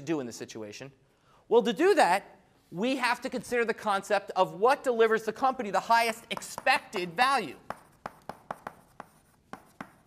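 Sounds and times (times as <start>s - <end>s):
chalk writing on a blackboard: 6.1s - 10.0s.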